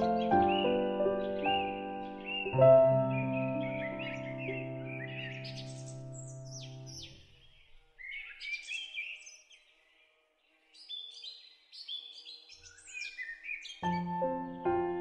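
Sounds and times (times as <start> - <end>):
soft piano music: 0.0 - 7.3, 13.8 - 15.0
small birds chirping: 0.0 - 15.0.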